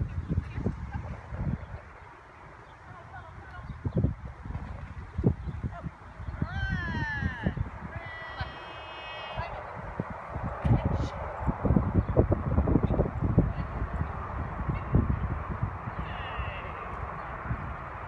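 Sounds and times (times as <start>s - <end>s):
high-pitched animal calls: 8.1s - 9.6s.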